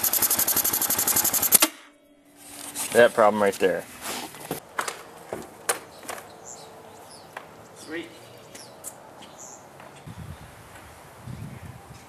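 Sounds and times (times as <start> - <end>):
bird chirping: 5.8 - 10.5.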